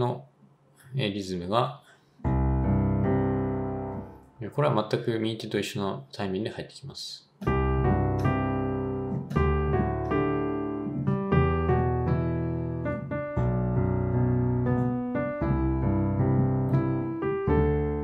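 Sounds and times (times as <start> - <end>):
piano riff: 2.2 - 4.9, 7.4 - 18.0.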